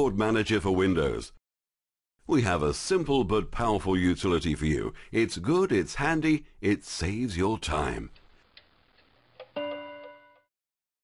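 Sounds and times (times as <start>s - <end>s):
bell-like chime: 9.6s - 10.5s.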